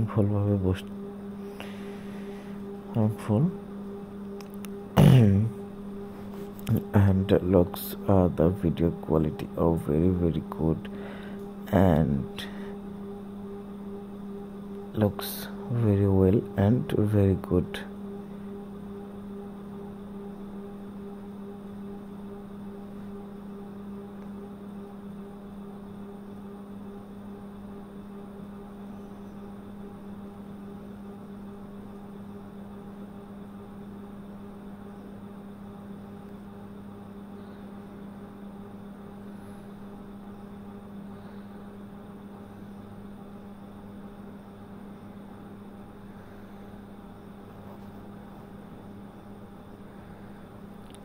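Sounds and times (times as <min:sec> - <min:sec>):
low hum: 0:00.0 - 0:51.0.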